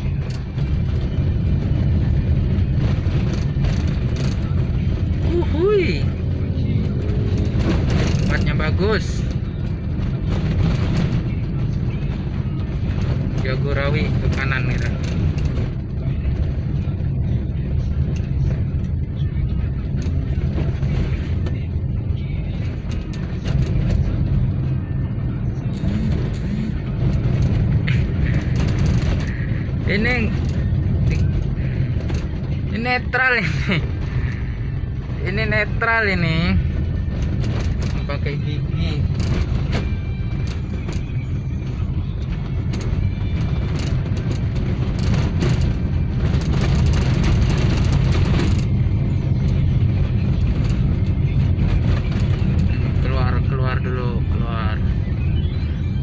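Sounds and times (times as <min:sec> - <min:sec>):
car engine and tyre noise: 0:00.0 - 0:56.0.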